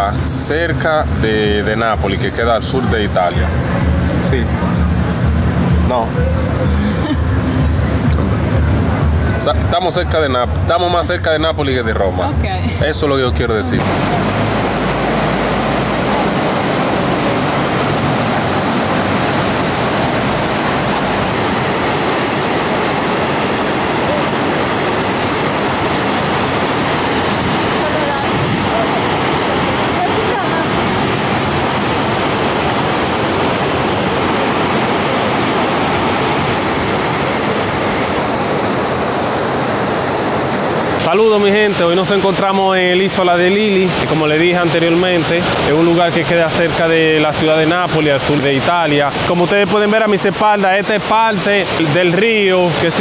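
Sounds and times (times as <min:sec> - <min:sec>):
river water rushing over weir: 0:13.6 - 0:53.0.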